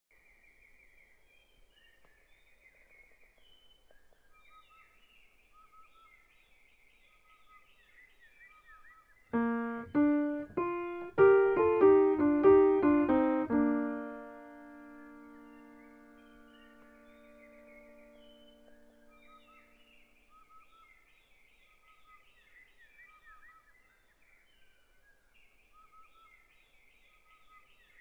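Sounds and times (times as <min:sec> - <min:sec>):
faint bird-like chirping: 0:00.1 - 0:28.0
piano run ending on chord: 0:09.4 - 0:19.4.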